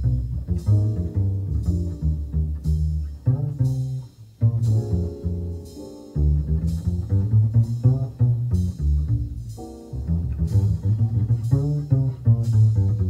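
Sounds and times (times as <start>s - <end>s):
jazz music: 0.0s - 13.0s
light cymbal strokes: 0.0s - 13.0s
plucked double bass: 0.0s - 13.0s.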